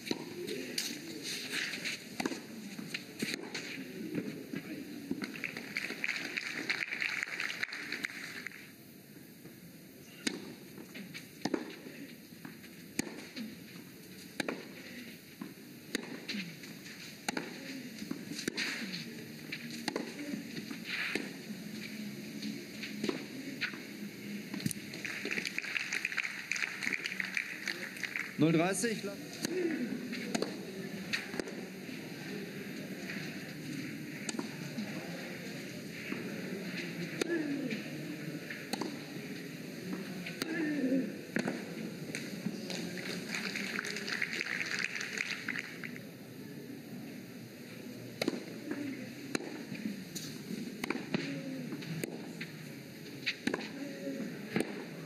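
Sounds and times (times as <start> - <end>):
crowd applause: 5.1 - 8.7, 24.5 - 29.0, 42.1 - 46.0
racket hitting tennis ball: 19.8 - 21.4, 29.4 - 31.6, 38.4 - 39.1, 49.3 - 52.2, 53.2 - 53.8, 54.5 - 54.8
tennis racket hitting ball: 38.5 - 39.1, 53.4 - 53.8.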